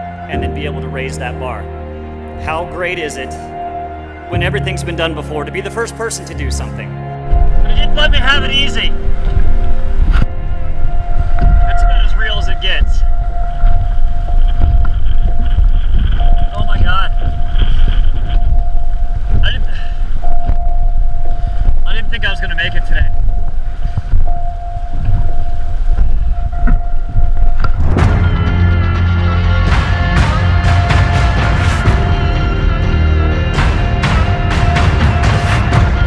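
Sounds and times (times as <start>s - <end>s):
wind buffeting microphone: 7.2s - 28.8s
man's indistinct voice: 16.4s - 17.9s.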